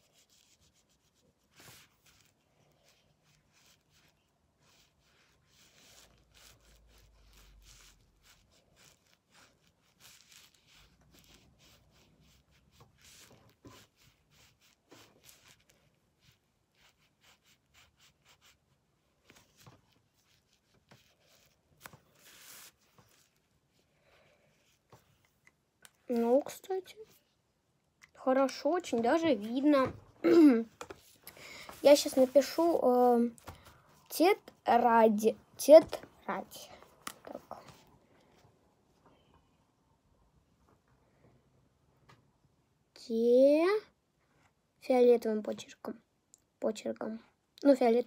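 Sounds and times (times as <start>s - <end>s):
marker scratching on paper: 0.0s - 23.8s, 30.9s - 33.1s.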